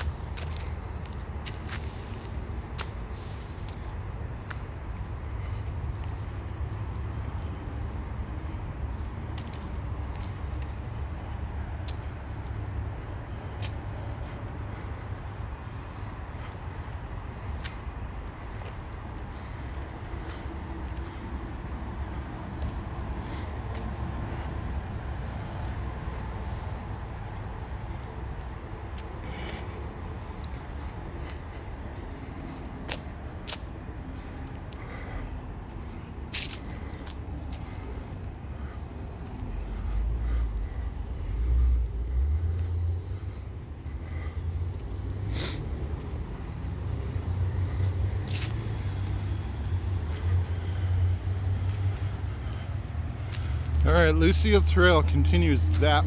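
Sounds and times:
high insect drone: 0:00.0 - 0:56.0.

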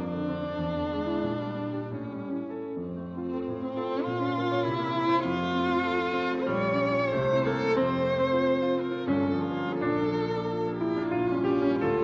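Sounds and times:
piano accompaniment: 0:00.0 - 0:12.0
slow violin melody: 0:00.0 - 0:12.0.

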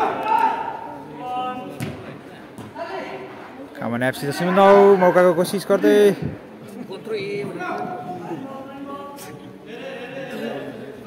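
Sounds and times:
men talking in a large hall: 0:00.0 - 0:11.0.

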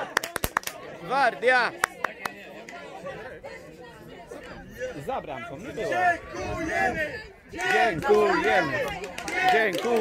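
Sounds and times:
children chattering: 0:00.0 - 0:09.8
sharp clap: 0:00.1 - 0:00.8.

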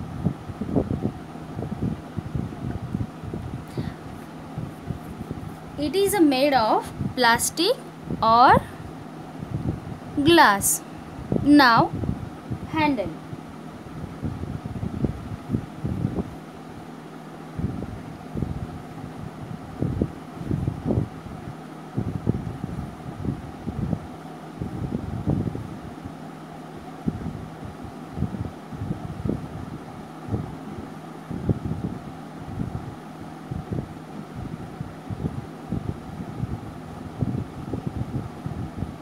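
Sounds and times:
wind buffeting microphone: 0:00.0 - 0:16.8, 0:17.5 - 0:26.2, 0:27.0 - 0:39.0
faint steady hum: 0:00.0 - 0:39.0.

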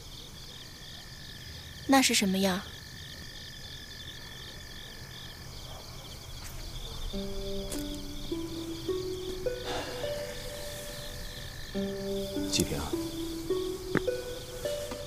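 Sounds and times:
insects chirping: 0:00.0 - 0:15.0
soft background music: 0:06.7 - 0:15.0.

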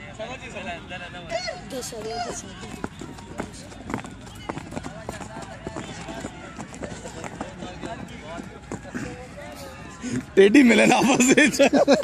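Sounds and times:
voices: 0:00.0 - 0:12.0.

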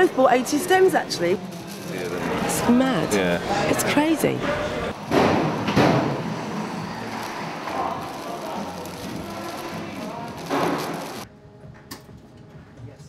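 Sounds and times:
din of busy market hall: 0:00.0 - 0:13.0
distant voices: 0:06.1 - 0:11.2.

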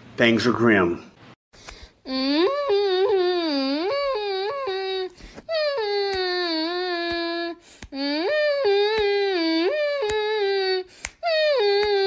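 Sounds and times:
high wordless voice wailing: 0:02.1 - 0:12.0.

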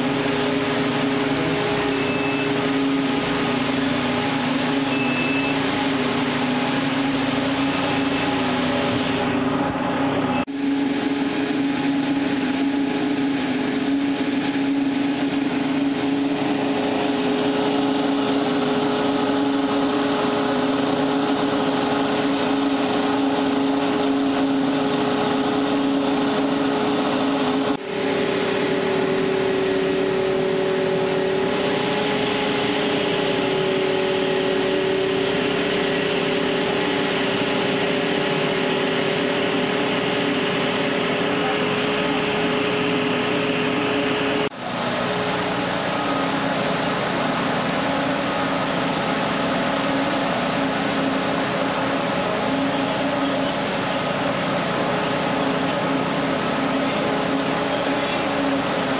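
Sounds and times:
engine droning: 0:00.0 - 0:58.9.

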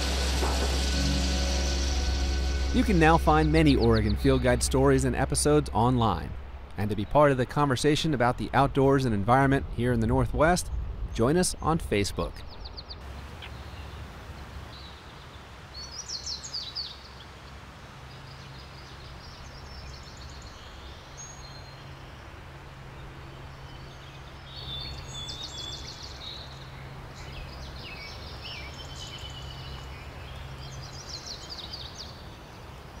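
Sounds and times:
birds chirping and singing: 0:00.0 - 0:05.6, 0:24.1 - 0:32.2
steady low rumble: 0:00.0 - 0:06.8.

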